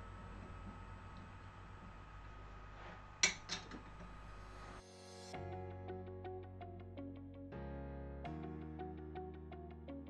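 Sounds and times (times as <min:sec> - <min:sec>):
low steady room hum: 0:00.0 - 0:04.8.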